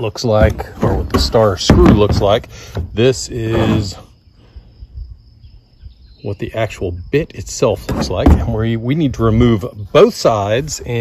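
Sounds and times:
high-pitched insect trill: 2.2s - 7.9s.

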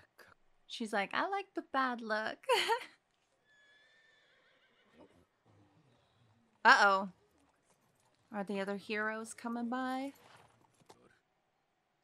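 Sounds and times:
faint anime soundtrack: 0.0s - 12.0s.

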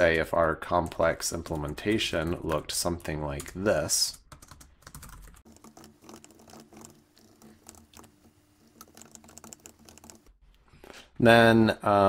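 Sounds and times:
computer keyboard typing: 0.1s - 10.3s.

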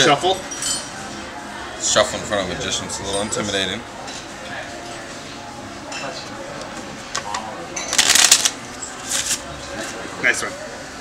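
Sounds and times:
playing cards riffle-shuffled: 8.0s - 9.4s.

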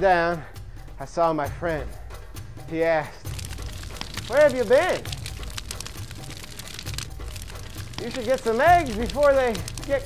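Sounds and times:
soft background music: 0.0s - 10.0s
wood fire crackling: 2.8s - 10.0s.

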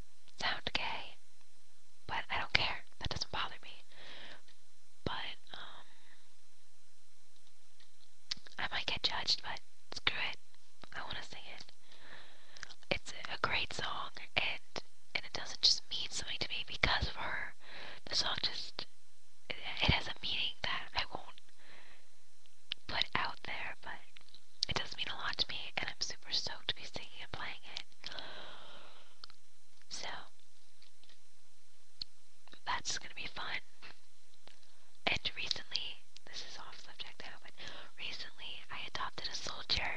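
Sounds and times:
faint low hum: 0.0s - 39.9s
person whispering: 0.4s - 1.2s, 2.1s - 3.9s, 5.0s - 6.0s, 8.3s - 11.7s, 12.7s - 18.9s, 19.5s - 21.4s, 22.9s - 28.3s, 29.9s - 30.3s, 32.5s - 33.7s, 35.0s - 39.9s.

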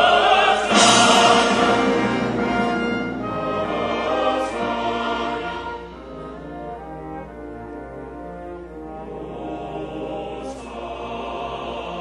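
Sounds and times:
choir singing with orchestra: 0.0s - 12.0s.

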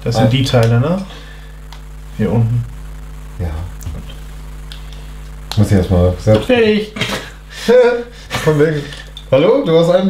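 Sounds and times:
man's voice bursts: 2.2s - 2.7s.

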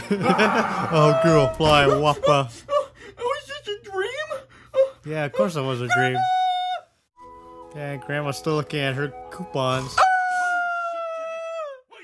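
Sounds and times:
person screaming: 0.2s - 2.4s.

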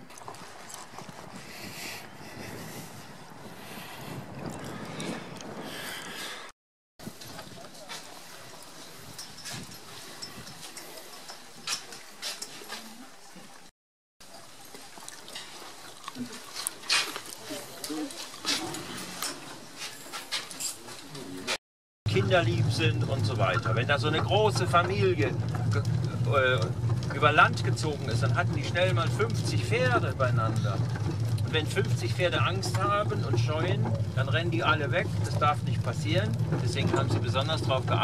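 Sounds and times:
wind blowing across microphone: 0.0s - 11.7s.

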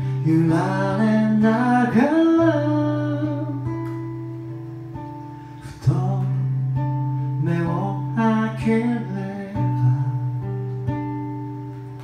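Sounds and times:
man singing: 0.0s - 3.7s, 5.6s - 10.6s
acoustic guitar strumming: 0.0s - 12.0s.

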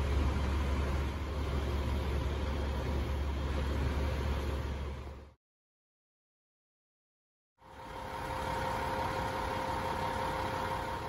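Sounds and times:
steady hum: 0.0s - 5.4s, 7.6s - 11.0s
diesel engine running: 7.6s - 11.0s.

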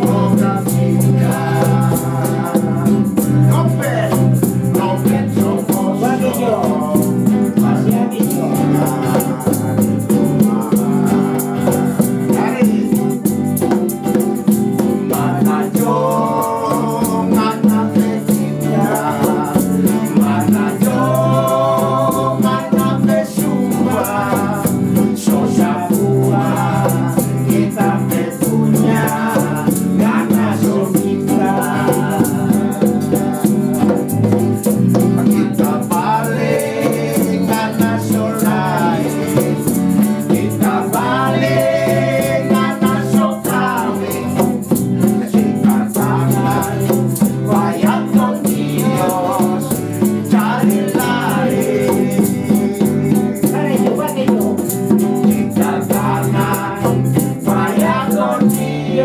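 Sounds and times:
hand drum rhythm: 0.0s - 59.0s
men singing together: 0.0s - 59.0s
shakers rattling: 0.0s - 59.0s
strummed guitars: 0.0s - 59.0s.

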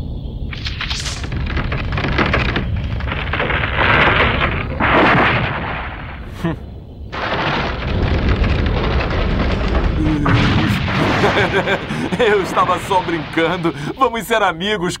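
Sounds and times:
tree trunks crashing down: 0.5s - 6.5s, 7.1s - 14.2s.

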